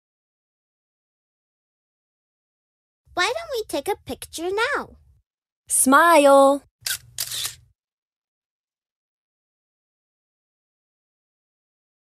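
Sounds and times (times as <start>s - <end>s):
camera shutter clicks: 6.8s - 7.6s.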